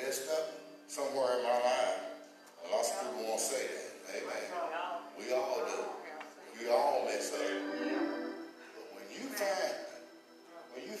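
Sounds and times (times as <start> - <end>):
man speaking: 0.0 - 4.5, 5.2 - 9.9.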